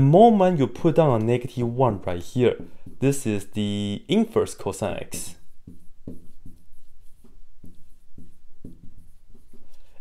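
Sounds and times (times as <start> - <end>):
marker writing on a whiteboard: 0.8 - 10.0.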